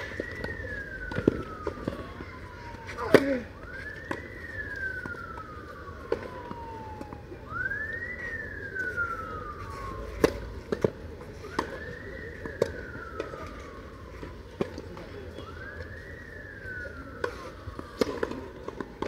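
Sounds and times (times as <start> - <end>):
siren wailing: 0.0 - 19.0.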